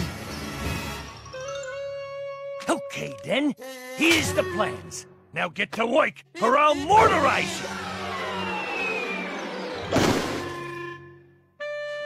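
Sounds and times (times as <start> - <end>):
orchestral music: 6.4 - 12.0
descending cartoon whistle: 7.0 - 11.8
loud crash: 7.6 - 10.8.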